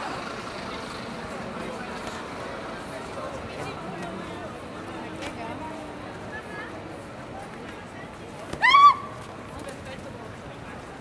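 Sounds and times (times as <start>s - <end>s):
pedestrians chattering: 0.0s - 11.0s
traffic noise: 0.0s - 11.0s.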